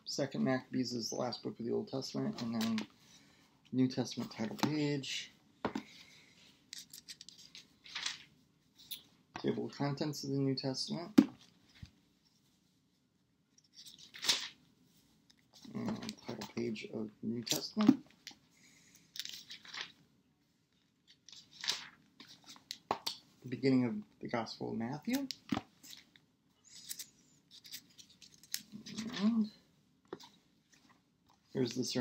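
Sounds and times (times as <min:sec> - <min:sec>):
paper pages turning: 0:06.8 - 0:08.3, 0:13.8 - 0:14.6, 0:19.2 - 0:20.0, 0:21.1 - 0:22.8.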